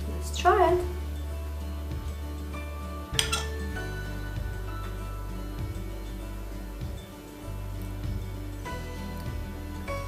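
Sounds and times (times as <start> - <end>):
background music: 0.0 - 10.0
fork clinking on ceramic plate: 3.2 - 3.6.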